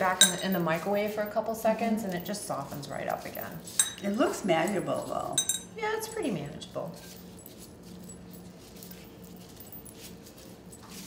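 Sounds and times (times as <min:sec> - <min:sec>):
low steady hum: 0:00.0 - 0:11.0
plastic gloves crinkling: 0:00.0 - 0:11.0.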